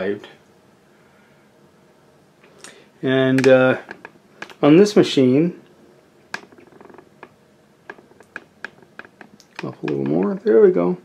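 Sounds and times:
faint rapid ticking: 6.2 - 10.6.

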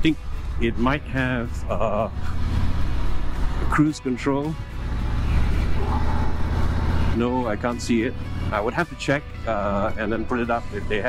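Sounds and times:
motorcycle engine rumbling: 0.0 - 11.0
road noise: 0.0 - 11.0.

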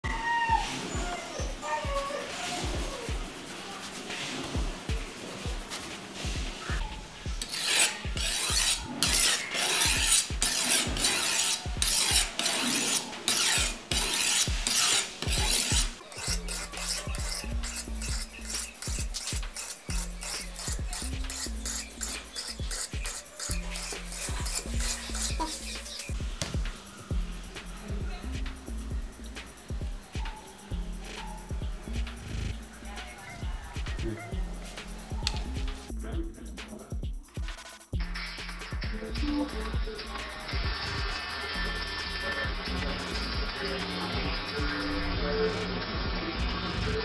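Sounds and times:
background music with beat: 0.1 - 47.0
knife being sharpened: 7.4 - 26.2.

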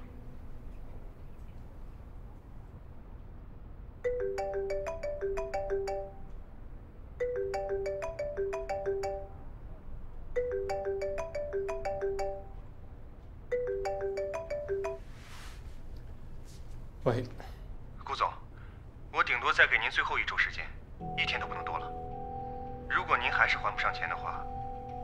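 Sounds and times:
phone ringtone melody: 4.0 - 6.4, 7.2 - 9.5, 10.4 - 12.6, 13.5 - 15.1, 21.0 - 25.0.

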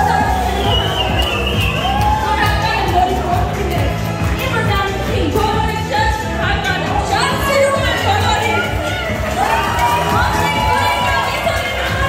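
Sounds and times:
amplified party music: 0.0 - 12.0
crowd cheering and shouting: 0.0 - 12.0.

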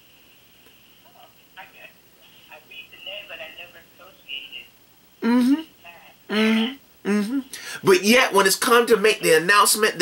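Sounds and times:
voice over phone speaker: 1.2 - 10.0.

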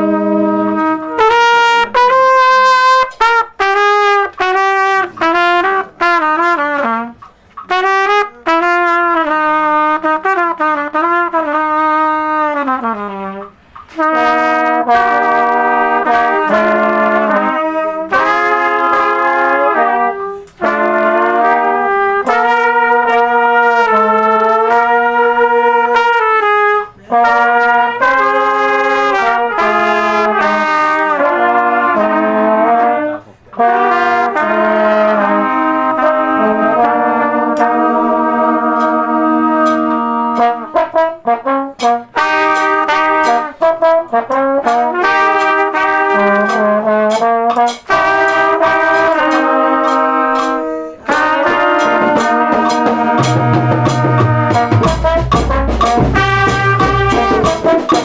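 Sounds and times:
trumpets and trombone playing: 0.0 - 58.0
deep bass notes: 53.2 - 57.7.

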